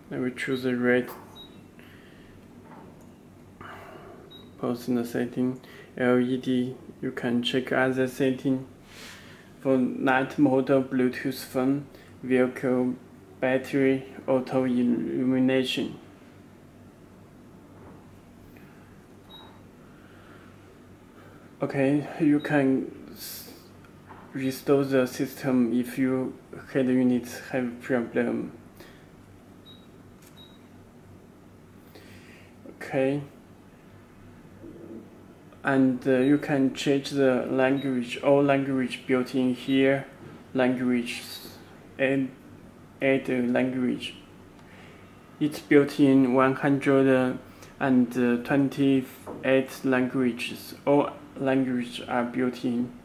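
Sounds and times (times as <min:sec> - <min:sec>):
man speaking: 0:00.0 - 0:01.4, 0:04.6 - 0:08.7, 0:09.6 - 0:16.1, 0:21.6 - 0:23.7, 0:24.3 - 0:28.6, 0:32.7 - 0:33.4, 0:35.6 - 0:42.4, 0:43.0 - 0:44.2, 0:45.4 - 0:53.0
faint low hum: 0:00.0 - 0:53.0.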